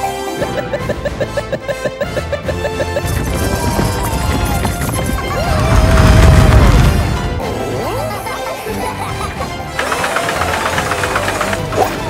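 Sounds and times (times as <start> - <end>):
background music: 0.0 - 12.0
cart wheels rattling on rails: 2.8 - 6.9, 8.4 - 12.0.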